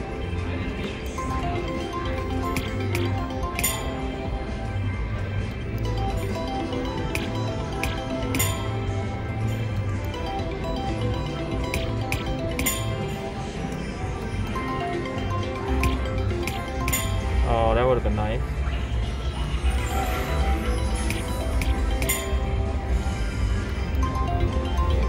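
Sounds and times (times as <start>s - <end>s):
slot machine music and chimes: 0.0s - 25.0s
slot machine reel click: 1.4s - 4.3s, 5.8s - 9.0s, 9.6s - 13.4s, 14.6s - 17.4s, 20.8s - 22.6s.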